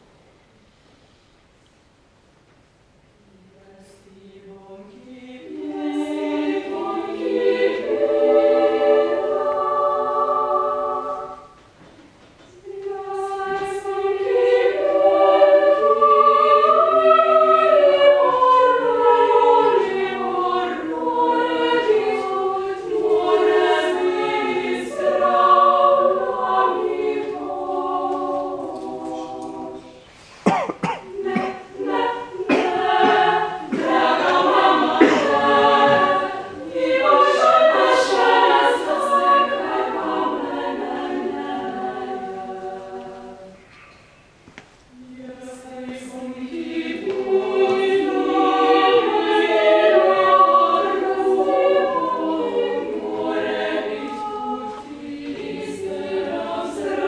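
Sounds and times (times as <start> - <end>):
female choir singing a cappella: 3.2 - 11.8, 12.4 - 44.0, 44.9 - 57.0.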